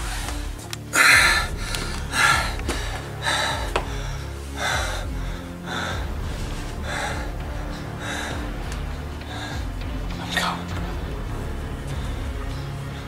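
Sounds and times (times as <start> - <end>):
low droning film score: 0.0 - 13.0
man breathing heavily: 0.0 - 13.0.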